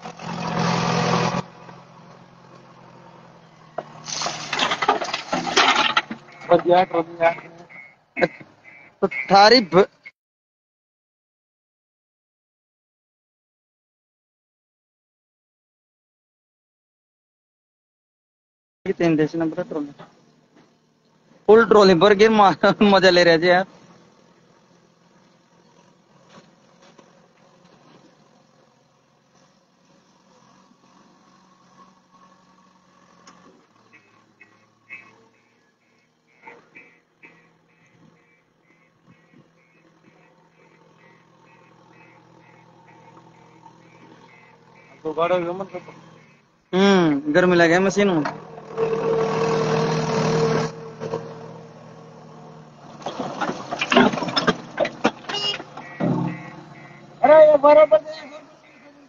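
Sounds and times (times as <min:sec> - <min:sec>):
diesel engine running: 0:00.0 - 0:09.5, 0:18.9 - 0:59.0
bucket tipping soil clatter: 0:04.0 - 0:06.2.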